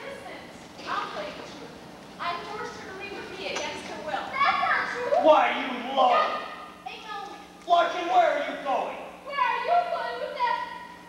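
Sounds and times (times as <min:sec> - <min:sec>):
actors speaking on stage: 0:00.0 - 0:11.0.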